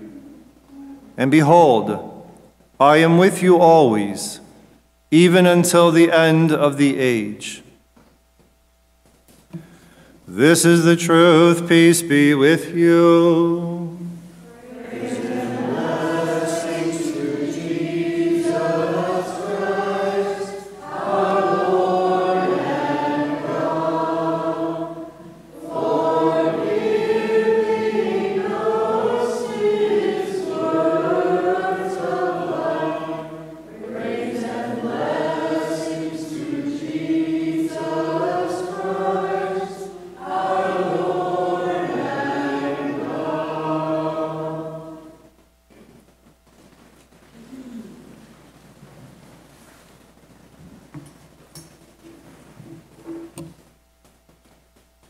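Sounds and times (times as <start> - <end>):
group singing a chant: 10.4 - 45.3.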